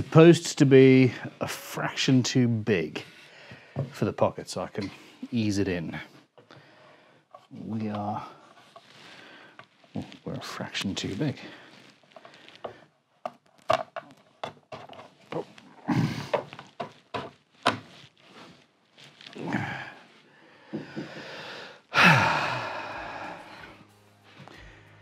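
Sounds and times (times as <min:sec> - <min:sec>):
person grunting and breathing: 0:15.8 - 0:16.4, 0:19.4 - 0:23.8
wooden knocks and taps: 0:16.3 - 0:17.9.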